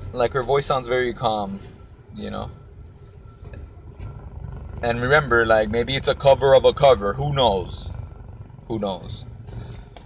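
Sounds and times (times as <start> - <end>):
low rumble: 2.5 - 10.0
man talking: 4.8 - 7.9, 8.7 - 9.3.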